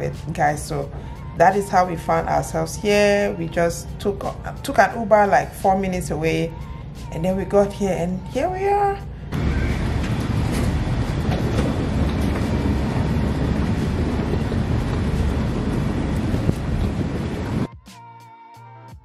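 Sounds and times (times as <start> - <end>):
background music with regular beat: 0.0 - 19.0
wind rumbling on microphone: 9.3 - 17.7.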